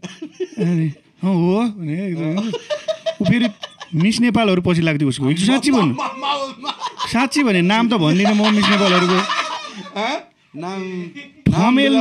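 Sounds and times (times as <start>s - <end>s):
man cackling laugh: 2.4s - 4.2s, 8.1s - 10.0s.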